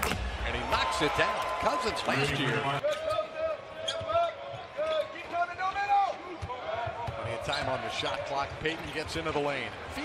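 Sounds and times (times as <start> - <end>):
sneakers squeaking: 2.8 - 4.3.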